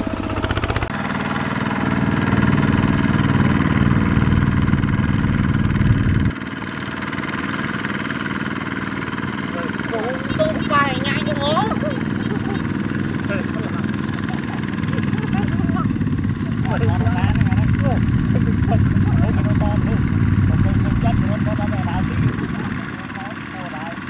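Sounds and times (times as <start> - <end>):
diesel engine running under load: 0.0 - 24.0.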